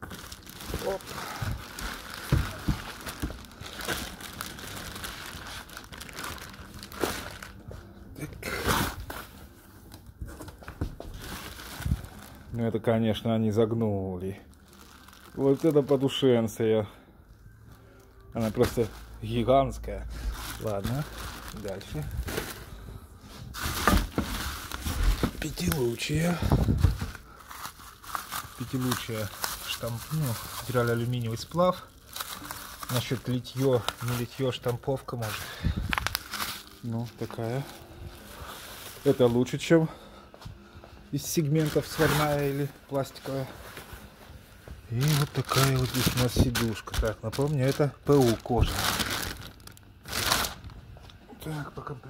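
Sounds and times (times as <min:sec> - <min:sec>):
plastic wrapping crinkling: 0:00.0 - 0:39.9, 0:41.2 - 0:51.2.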